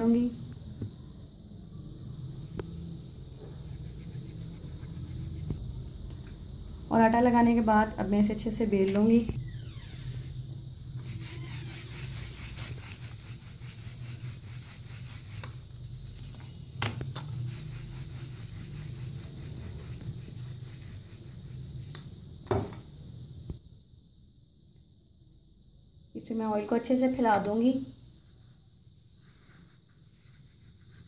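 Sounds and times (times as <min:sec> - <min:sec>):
rolling pin rolling dough: 0:11.0 - 0:21.9.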